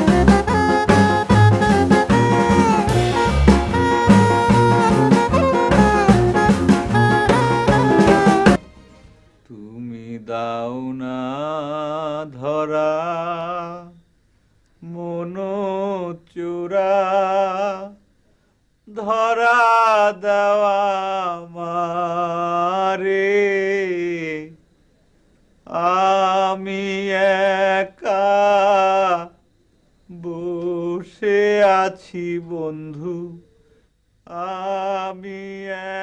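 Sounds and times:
man singing unaccompanied: 0:00.0 - 0:08.6, 0:09.4 - 0:14.1, 0:14.8 - 0:18.1, 0:18.8 - 0:24.6, 0:25.6 - 0:29.4, 0:30.0 - 0:36.0.

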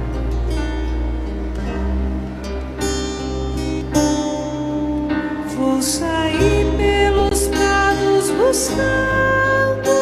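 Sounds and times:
acoustic guitar strumming: 0:00.0 - 0:10.0
held bass line: 0:00.0 - 0:10.0.

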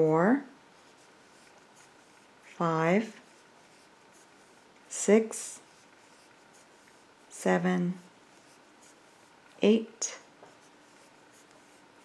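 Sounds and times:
yarn rubbing on crochet hook: 0:00.7 - 0:12.0.

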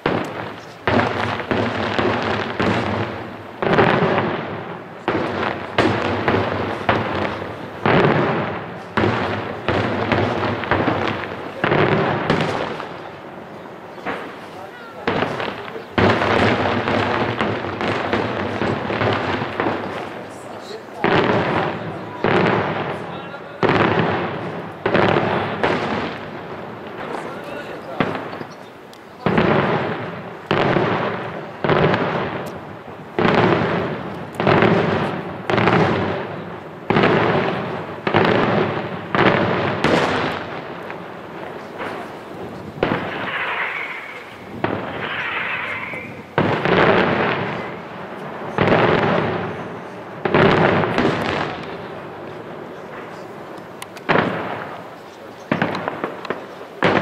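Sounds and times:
fireworks bursting with echo: 0:00.0 - 0:57.0.

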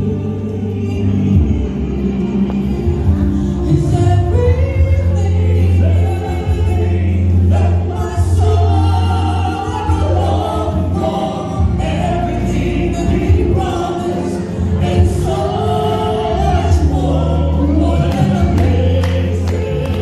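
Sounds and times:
instrumental accompaniment with bass: 0:00.0 - 0:20.0
woman and man singing: 0:00.0 - 0:20.0.

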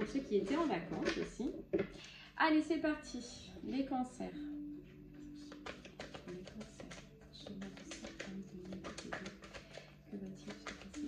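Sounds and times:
soft background music: 0:00.0 - 0:11.0
cards being shuffled: 0:05.4 - 0:11.0.

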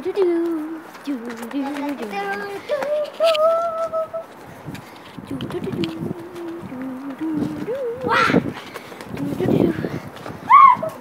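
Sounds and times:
rough children's voice sounds: 0:00.0 - 0:04.5, 0:05.2 - 0:11.0.

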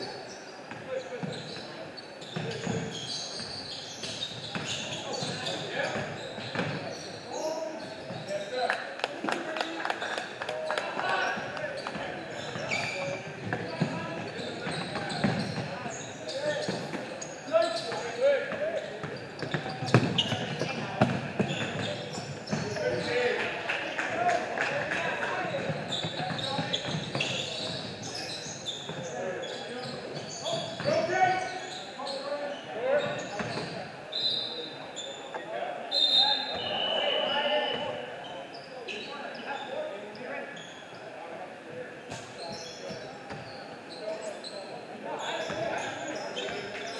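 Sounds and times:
voices in a large hall: 0:00.0 - 0:46.9.

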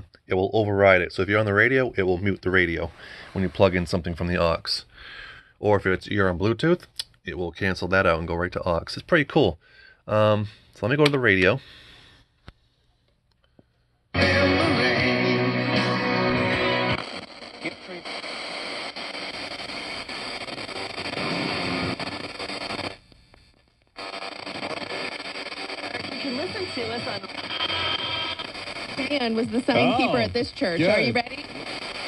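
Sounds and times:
radio music and talk: 0:00.3 - 0:05.0, 0:14.2 - 0:23.0, 0:24.0 - 0:32.0.

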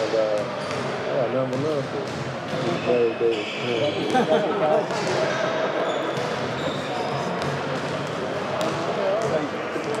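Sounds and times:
basketballs bouncing on hardwood: 0:00.4 - 0:02.8, 0:07.4 - 0:09.5
chatter of voices: 0:02.6 - 0:10.0.

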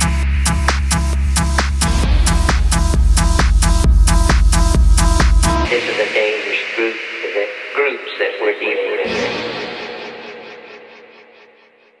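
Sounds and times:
filtered vocal sample: 0:05.6 - 0:11.2.

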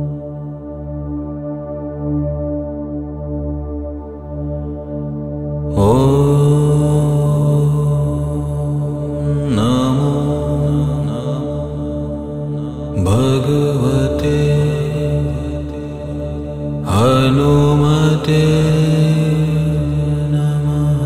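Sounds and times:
low voice chanting mantra: 0:05.7 - 0:21.0.

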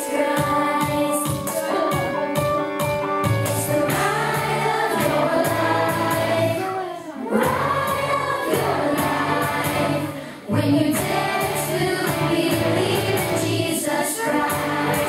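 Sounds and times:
group singing: 0:00.0 - 0:02.0, 0:03.5 - 0:15.0
steady bass line: 0:02.0 - 0:06.6, 0:07.4 - 0:13.7, 0:14.4 - 0:15.0.

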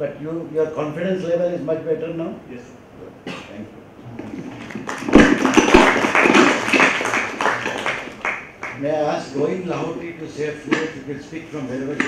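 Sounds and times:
small group applauding: 0:04.3 - 0:08.9.

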